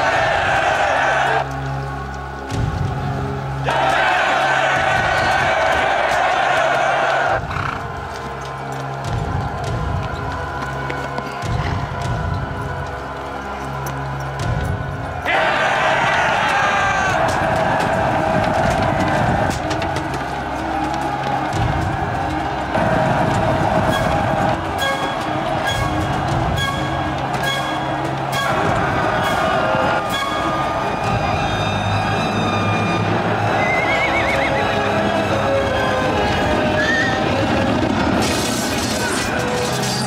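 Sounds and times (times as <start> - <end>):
film music: 0.0 - 40.0
clattering hoofbeats: 3.7 - 15.4, 16.2 - 40.0
horses neighing: 7.4 - 8.0, 33.4 - 35.0.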